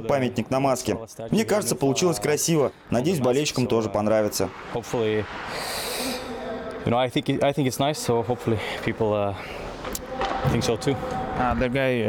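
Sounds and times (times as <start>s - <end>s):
man speaking: 0.0s - 5.3s
soft airy hiss: 4.4s - 6.7s.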